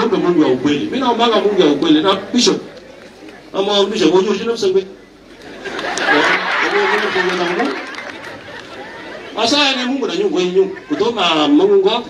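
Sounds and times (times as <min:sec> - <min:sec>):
man speaking into a microphone: 0:00.0 - 0:02.7, 0:03.5 - 0:05.0, 0:06.0 - 0:07.8, 0:09.3 - 0:12.0
crowd chatter: 0:00.0 - 0:12.0.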